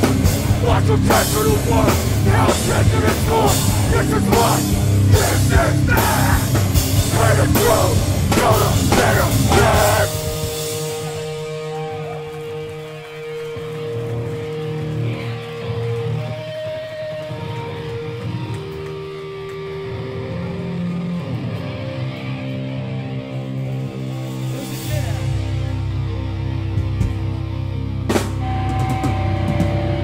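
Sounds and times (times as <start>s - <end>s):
electric guitar ringing: 28.4s - 30.0s.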